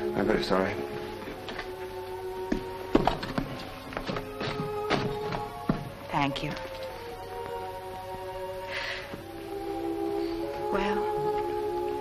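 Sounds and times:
film score music: 0:00.0 - 0:12.0
logs and fire irons clattering: 0:02.9 - 0:05.9.

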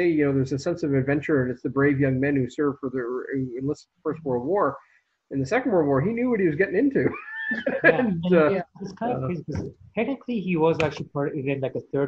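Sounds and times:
high-pitched sliding vocal sound: 0:00.0 - 0:04.8, 0:05.4 - 0:09.7
conversational speech: 0:00.0 - 0:12.0.

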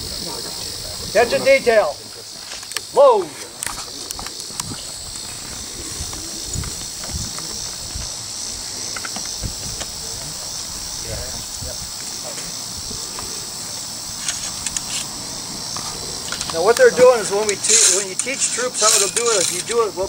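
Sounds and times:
insects droning: 0:00.0 - 0:20.0.

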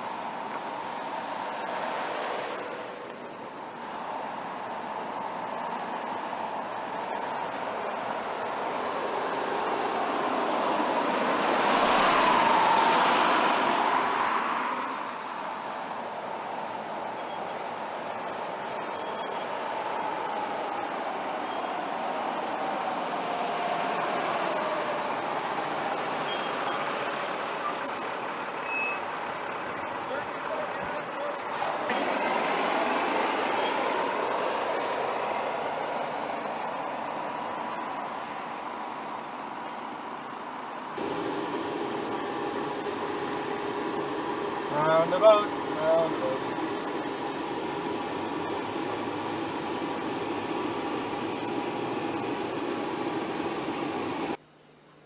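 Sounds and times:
diesel engines running: 0:00.0 - 0:54.4
vehicle running noise: 0:00.0 - 0:54.8.

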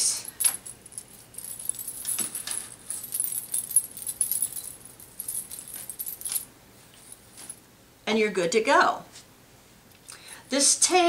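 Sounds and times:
metal coins jingling: 0:00.1 - 0:06.5.

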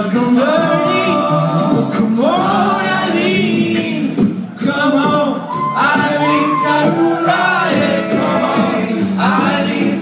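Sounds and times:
male a cappella group singing: 0:00.0 - 0:10.0.

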